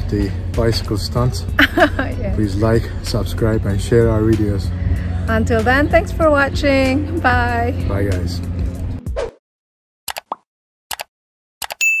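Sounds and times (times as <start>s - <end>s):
double mouse clicks: 10.1s - 11.8s.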